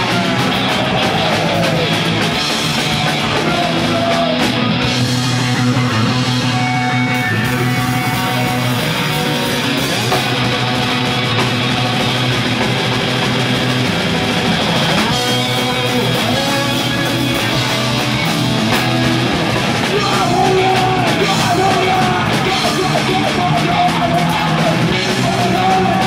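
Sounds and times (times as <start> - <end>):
drum kit: 0.0 - 26.0
electric guitars: 0.0 - 26.0.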